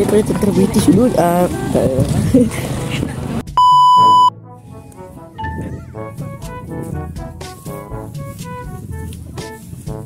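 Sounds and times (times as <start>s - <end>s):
background music: 3.5s - 10.0s
loud electronic beep: 3.6s - 4.3s.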